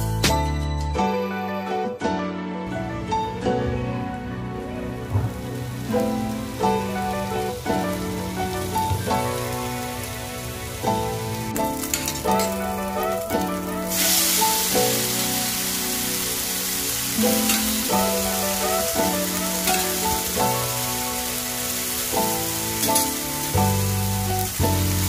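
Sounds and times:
background music: 0.0 - 25.0
meat sizzling in a pan: 5.0 - 25.0.

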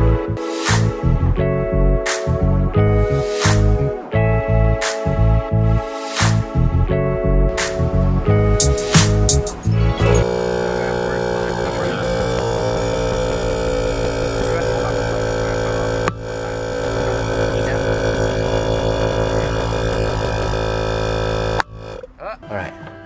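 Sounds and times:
air compressor buzzing drone: 7.6 - 22.1.

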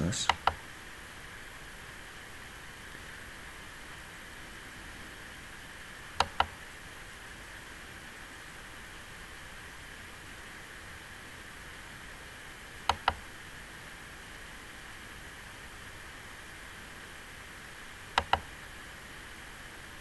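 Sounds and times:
faint background hiss: 0.0 - 20.0
computer mouse clicks: 0.3 - 0.6, 6.2 - 6.6, 12.8 - 13.2, 18.2 - 18.5.

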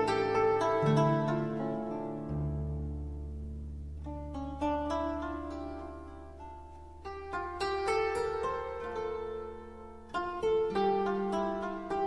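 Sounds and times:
harp music: 0.0 - 12.0.

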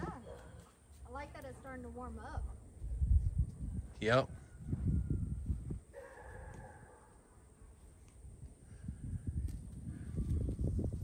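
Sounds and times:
wind buffeting microphone: 1.6 - 7.0, 8.2 - 11.0.

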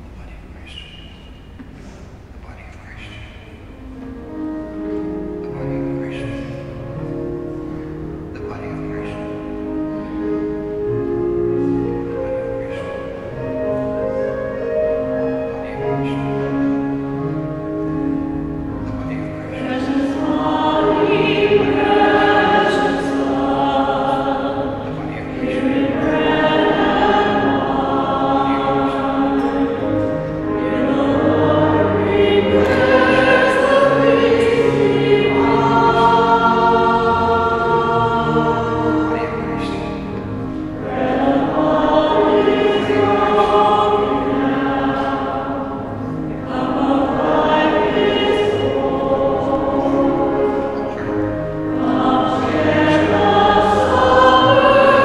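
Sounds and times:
church choir singing a hymn: 3.6 - 55.0.

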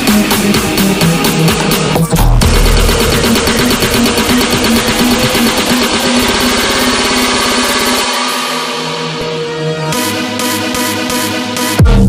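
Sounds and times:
stuttering synth: 0.0 - 12.0
pulsing low bass note: 2.1 - 8.0.

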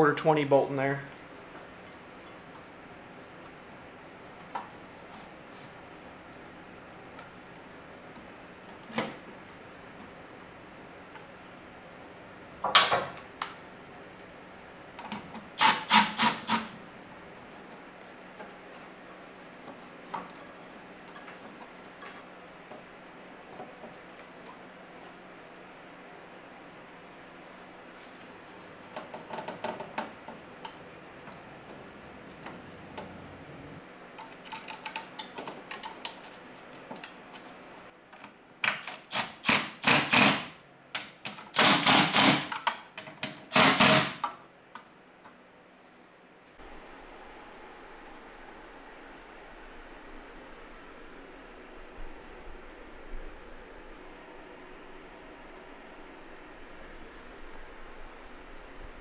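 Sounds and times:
cordless drill drilling: 15.6 - 16.7, 39.2 - 40.5, 41.6 - 42.5, 43.5 - 44.2.

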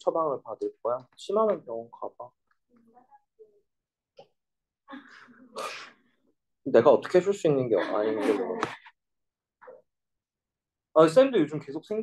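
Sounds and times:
person laughing breathily: 7.8 - 8.9.

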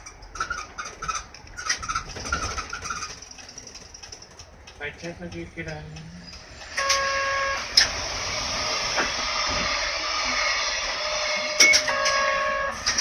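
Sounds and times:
bus engine hissing: 2.6 - 13.0
sharp clicks: 2.7 - 7.0.

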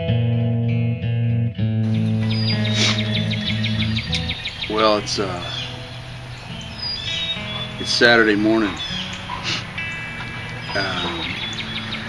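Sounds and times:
guitar music: 0.0 - 12.0
outdoor background noise: 1.8 - 12.0
bird chirping: 1.9 - 12.0.

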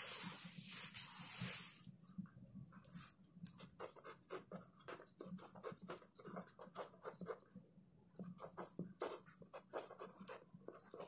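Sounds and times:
pen scratching on paper: 3.6 - 7.4, 8.2 - 11.0.

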